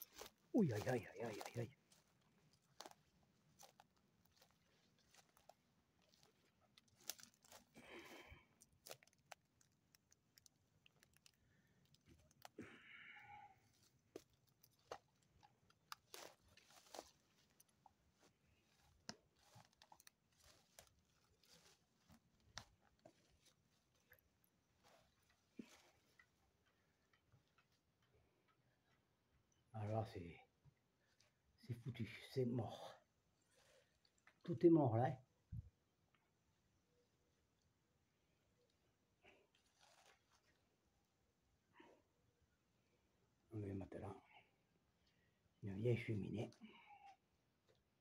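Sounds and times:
footsteps through grass and debris: 0:00.0 - 0:09.4, 0:15.8 - 0:26.1, 0:39.6 - 0:40.5.

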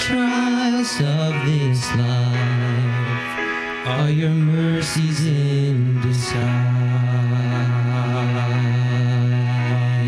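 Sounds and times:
man singing long note: 0:00.0 - 0:10.0
soft instrumental accompaniment: 0:00.0 - 0:10.0.

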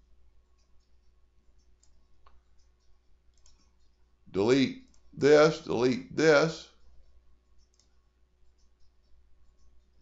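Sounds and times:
faint computer mouse clicks: 0:00.5 - 0:04.0, 0:06.8 - 0:10.0.

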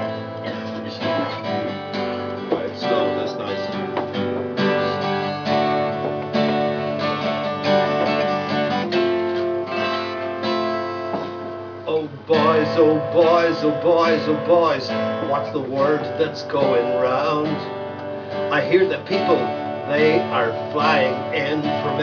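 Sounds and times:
acoustic guitar strumming chords: 0:00.0 - 0:22.0.

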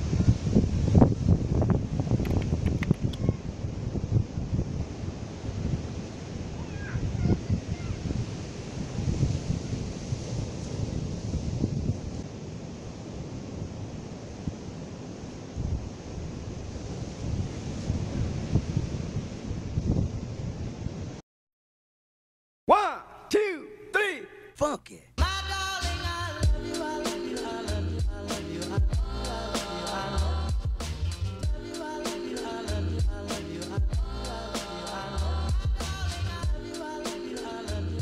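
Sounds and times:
wind buffeting microphone: 0:00.0 - 0:21.2.

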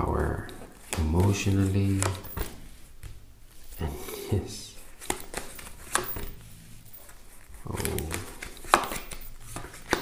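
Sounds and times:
cards being shuffled: 0:00.2 - 0:10.0
card snaps and flicks: 0:05.0 - 0:06.3, 0:07.8 - 0:10.0.

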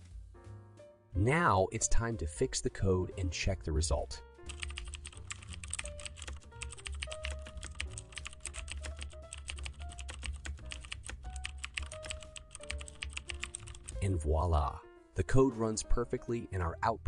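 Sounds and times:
soft background music with bass: 0:00.0 - 0:17.0
computer keyboard typing: 0:04.5 - 0:14.0.

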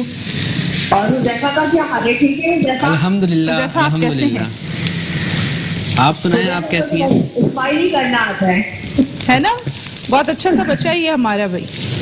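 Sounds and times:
food sizzling in a pan: 0:00.0 - 0:12.0
person talking: 0:02.8 - 0:04.6, 0:06.0 - 0:08.6, 0:10.2 - 0:11.2.

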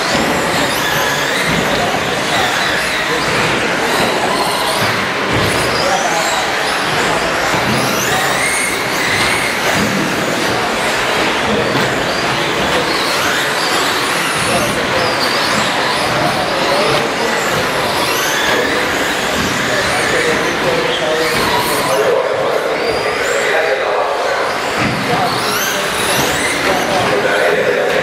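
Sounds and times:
rc truck motors whining: 0:00.0 - 0:23.5, 0:24.2 - 0:27.9
steady background noise: 0:00.0 - 0:28.0.

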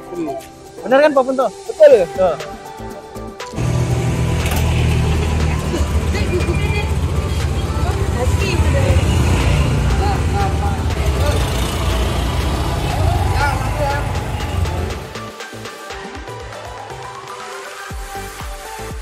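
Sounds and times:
scooter engines rumbling: 0:03.6 - 0:15.2
voices talking: 0:03.6 - 0:15.2.

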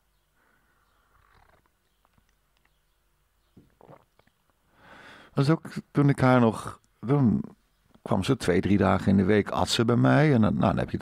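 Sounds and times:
small clicks: 0:01.1 - 0:02.8.

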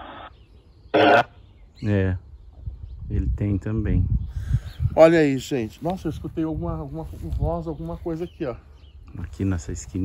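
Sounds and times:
radio static: 0:00.0 - 0:01.4
broadcast voice snippet: 0:01.0 - 0:02.0.

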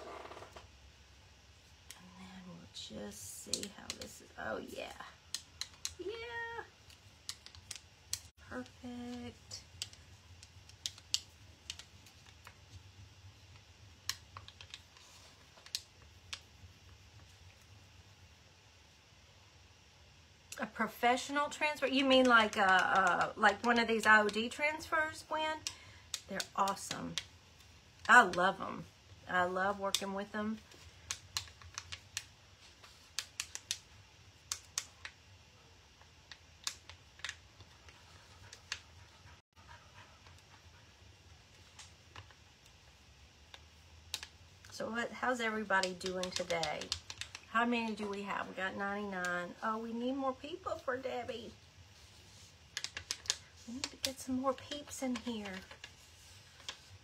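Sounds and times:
faint steady hum: 0:00.0 - 0:57.0
plastic sheet clicking and crackling: 0:14.0 - 0:16.4, 0:30.7 - 0:35.2, 0:36.0 - 0:38.8, 0:45.8 - 0:48.0, 0:52.7 - 0:57.0.

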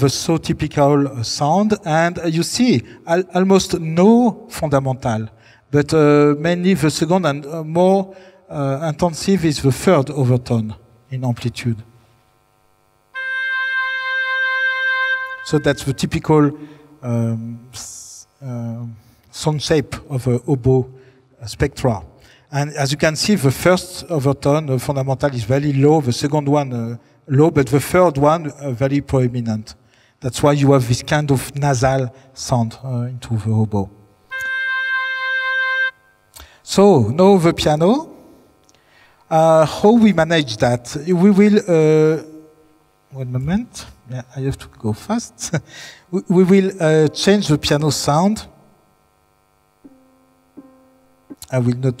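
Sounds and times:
held oboe note over loudspeakers: 0:13.1 - 0:16.7, 0:34.3 - 0:36.3.

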